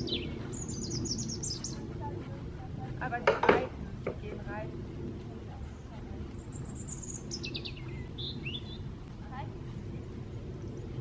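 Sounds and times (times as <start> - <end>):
low rumble: 0.0 - 11.0
songbird singing: 0.0 - 11.0.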